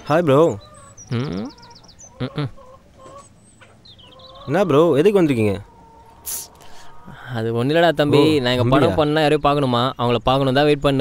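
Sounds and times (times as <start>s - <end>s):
high bird chirps: 0.0s - 6.8s
bird clucking: 0.5s - 7.3s.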